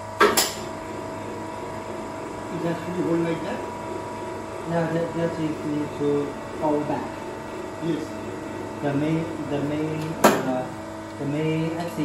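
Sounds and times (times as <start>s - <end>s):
machine electrical hum and whine: 0.0s - 12.0s.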